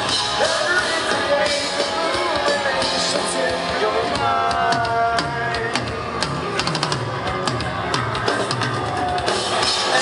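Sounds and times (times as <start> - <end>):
drum and cymbal hits: 0.0 - 10.0
punk rock band playing live: 0.0 - 10.0.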